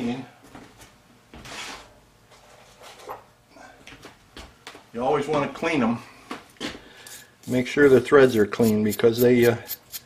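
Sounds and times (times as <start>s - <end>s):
short scrape: 7.0s - 10.0s.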